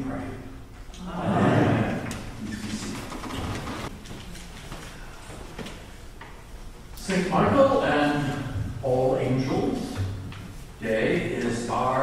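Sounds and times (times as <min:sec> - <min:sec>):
rustling and shuffling: 0:02.0 - 0:07.0.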